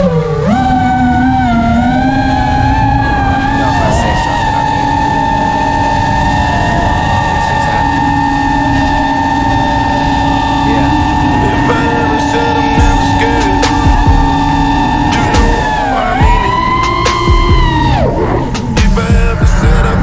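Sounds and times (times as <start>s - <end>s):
drone motors whining: 0.0s - 20.0s.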